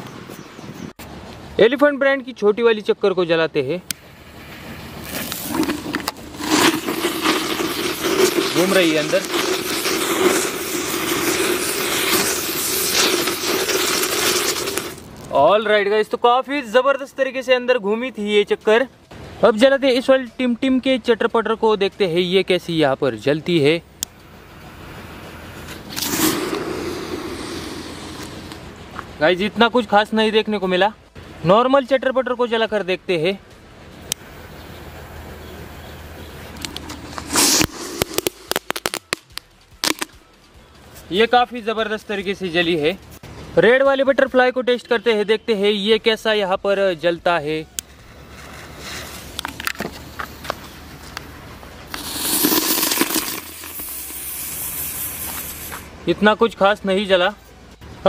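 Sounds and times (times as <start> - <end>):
firework fizzing: 4.2 - 15.2, 24.7 - 28.7, 36.8 - 40.2, 51.9 - 55.9
fuse sputtering and crackling: 5.0 - 15.3, 36.3 - 40.9.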